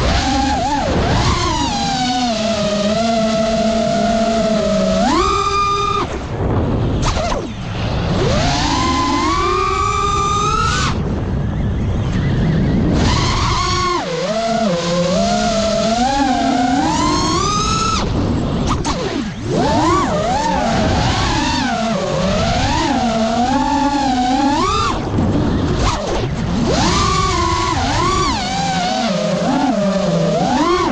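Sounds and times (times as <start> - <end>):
drone motors whining: 0.0 - 30.9
wind rush on microphone: 0.0 - 30.9.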